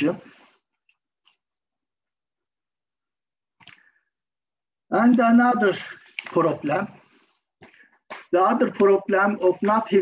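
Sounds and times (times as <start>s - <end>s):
man speaking: 0.0s - 0.4s, 4.9s - 7.1s, 8.2s - 10.0s.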